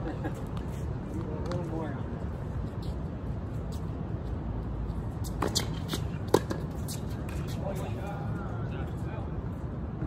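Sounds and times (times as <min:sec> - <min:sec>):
tennis ball bouncing on hard court: 0:05.2 - 0:07.6
tennis ball struck by racquets: 0:05.3 - 0:07.4.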